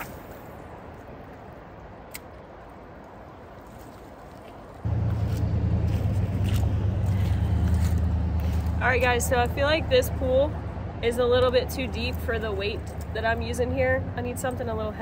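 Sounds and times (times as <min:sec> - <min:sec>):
loud low rumble: 0:04.8 - 0:11.6.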